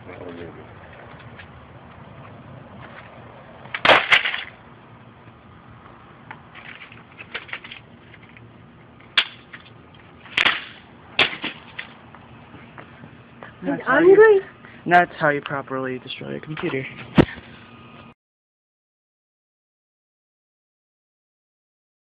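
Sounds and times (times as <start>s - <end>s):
computer parts smashed on concrete: 3.8s - 4.6s, 10.3s - 11.9s.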